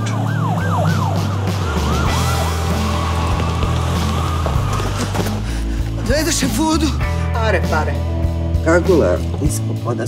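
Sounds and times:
police siren: 0.0s - 4.9s
background music: 0.0s - 10.0s.

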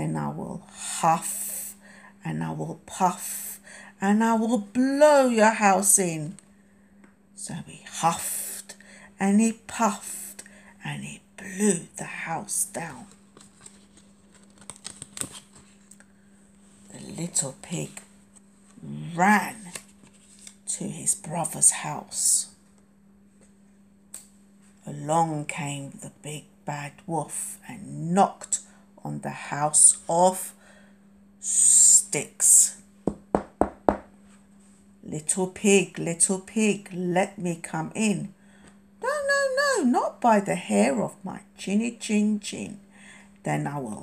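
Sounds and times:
cards rustling: 13.0s - 16.0s, 19.6s - 20.6s
knocks on hard surface: 33.1s - 34.1s.

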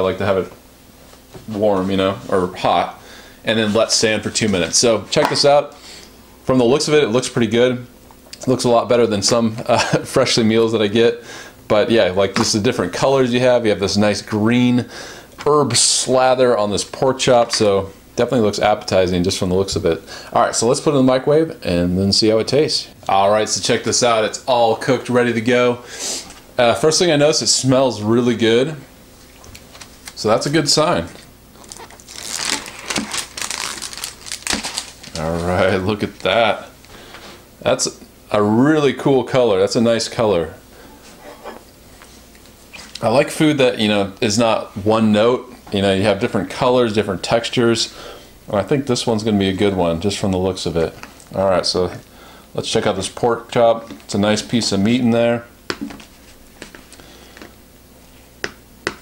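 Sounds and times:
plastic film lid peeling off: 31.6s - 35.2s.

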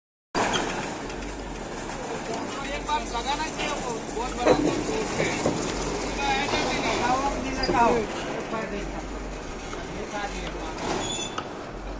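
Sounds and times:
gantry crane running: 0.4s - 11.9s.

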